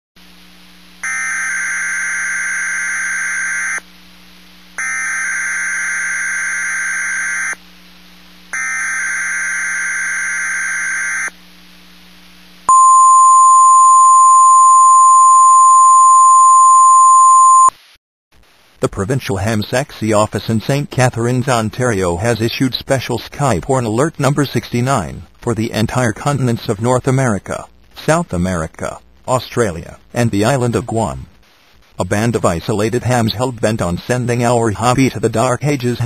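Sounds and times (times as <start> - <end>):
steady warning tone: 1.0 - 3.9, 4.8 - 7.6, 8.6 - 11.4, 12.7 - 17.7.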